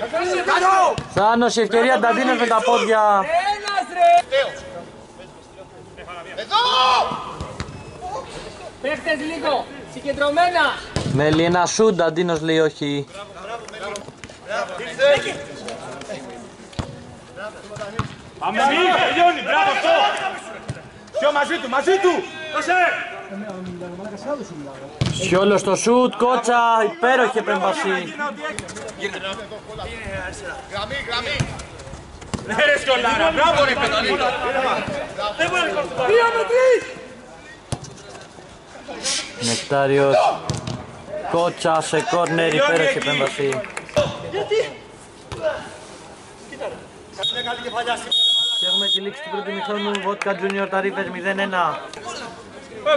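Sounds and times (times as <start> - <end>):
football kick thump: 11.0 - 11.4, 40.5 - 40.8.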